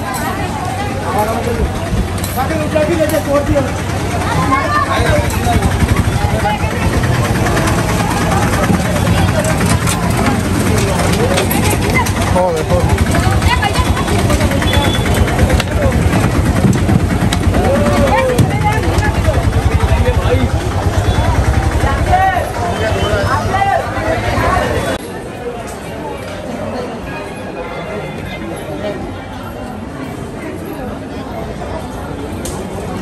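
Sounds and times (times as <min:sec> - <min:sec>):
crowd talking: 0:00.0 - 0:33.0
engine running: 0:00.7 - 0:25.0.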